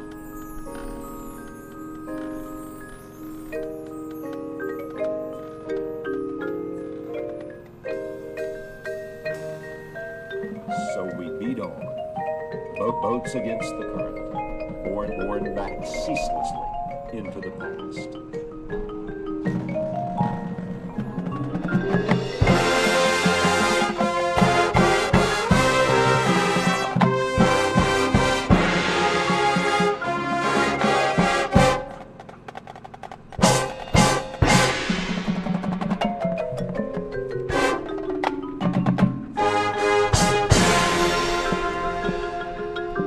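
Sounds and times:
mallet percussion runs: 0.0s - 43.0s
marching band playing: 0.0s - 43.0s
sharp accented band hits: 33.4s - 36.7s.

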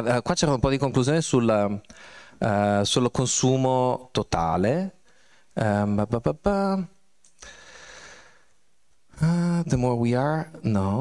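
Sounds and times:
breath near microphone: 1.9s - 2.4s, 5.0s - 5.6s, 7.4s - 8.6s.

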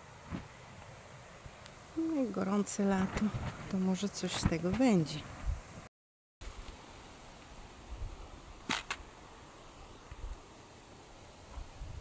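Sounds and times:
wind rumble on microphone: 2.9s - 5.9s, 11.5s - 12.0s.

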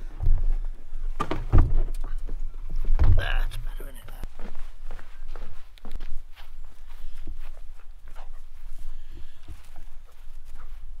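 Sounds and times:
footsteps on wooden pontoon: 0.0s - 11.0s.

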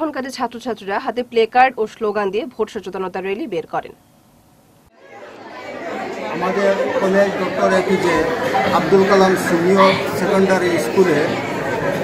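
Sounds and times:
people chattering in a room: 4.9s - 12.0s.

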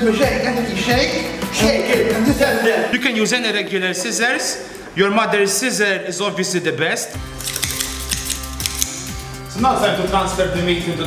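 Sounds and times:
background music with bass line: 0.0s - 2.9s, 7.2s - 11.0s
kitchen scissors snipping meat: 7.4s - 9.2s.

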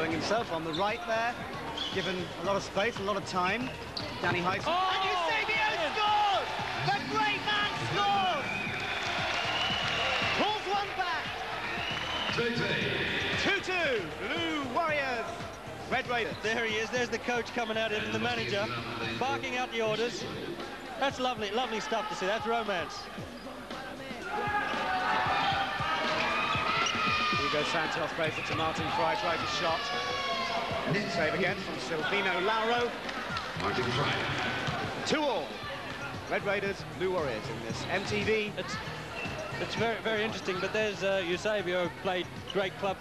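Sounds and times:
voices in hall: 0.0s - 43.0s
crowd shouting and cheering: 3.6s - 43.0s
high held shout: 24.2s - 27.8s.

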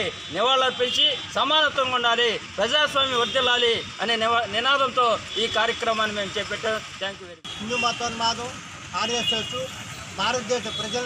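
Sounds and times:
man speaking: 0.0s - 11.0s
road traffic noise: 0.0s - 11.0s.

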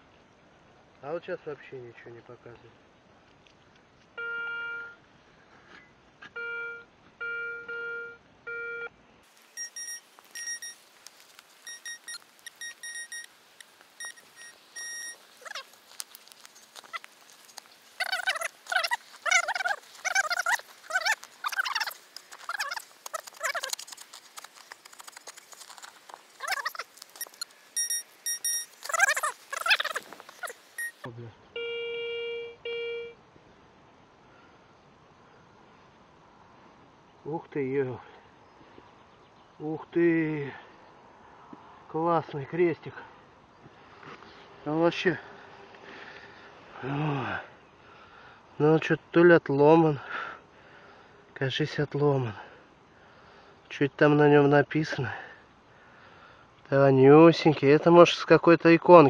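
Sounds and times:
metal detector beeping: 9.5s - 10.8s, 11.6s - 13.3s, 14.0s - 31.8s
shovel scraping through soil: 14.0s - 30.9s.

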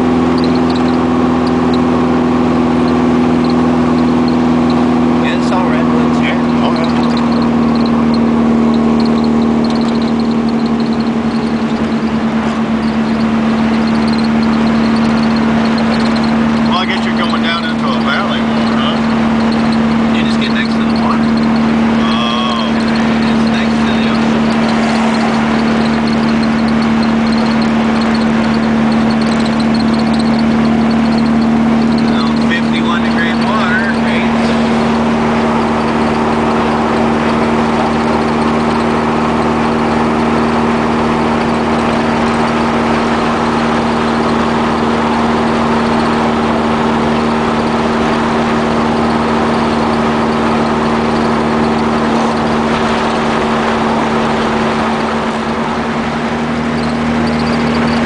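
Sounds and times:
car engine running: 0.0s - 58.0s
road and wind noise: 0.0s - 58.0s.

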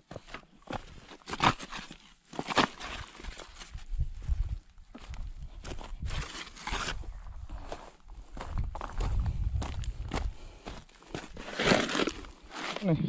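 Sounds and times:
footsteps crunching on gravel: 0.0s - 13.0s.

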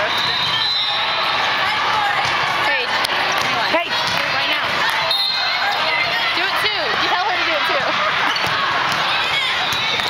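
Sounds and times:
babble of voices: 1.3s - 10.0s
balls thudding: 2.1s - 5.0s, 6.8s - 10.0s.

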